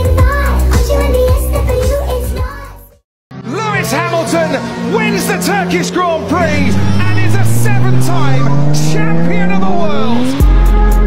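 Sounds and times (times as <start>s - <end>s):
racing car engine rising: 6.2s - 10.6s
person speaking: 6.4s - 10.4s.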